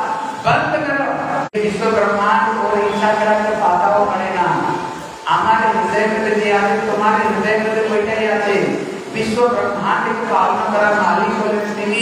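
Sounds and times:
man talking: 0.4 - 1.2.

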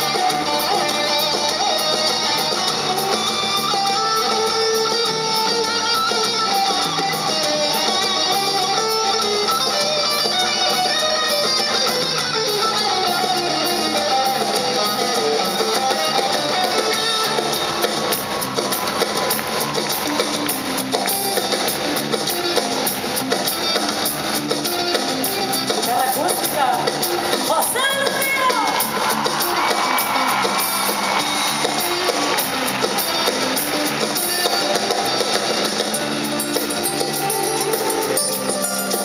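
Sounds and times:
electric guitar lead: 0.0 - 39.0
live rock band with drums: 0.0 - 39.0.

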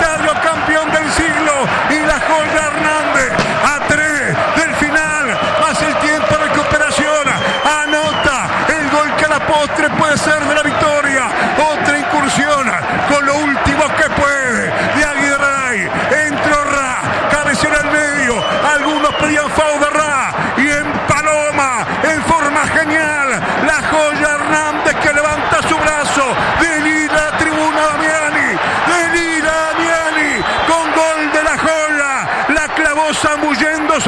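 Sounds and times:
man giving football commentary: 0.0 - 34.0.

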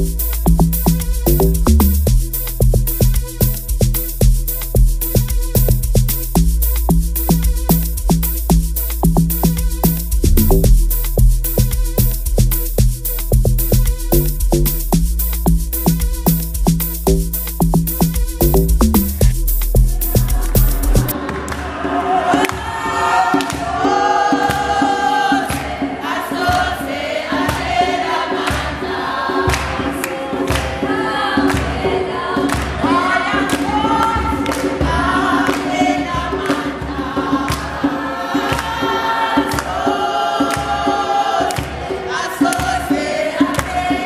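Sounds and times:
hand claps: 3.0 - 6.2, 11.6 - 14.7, 22.4 - 22.6, 23.4 - 23.8, 27.5 - 27.7, 28.4 - 28.7, 29.5 - 30.8, 31.5 - 31.7, 32.5 - 32.8, 33.5 - 33.7, 34.4 - 35.8, 36.4 - 36.7, 37.5 - 37.7, 38.5 - 38.8, 39.5 - 39.7, 40.5 - 40.8, 41.5 - 42.8, 43.5 - 43.9
group singing gospel in harmony: 19.9 - 44.0.

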